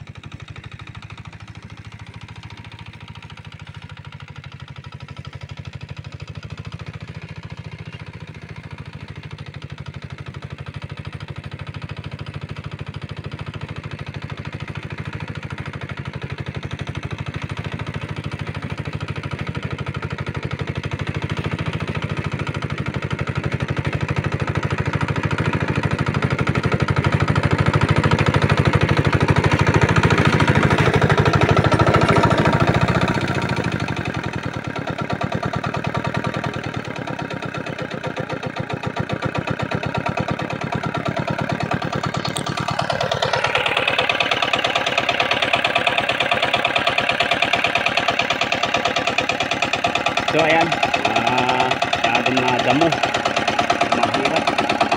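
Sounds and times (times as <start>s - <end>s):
hand tractor engine tilling: 20.9s - 54.9s.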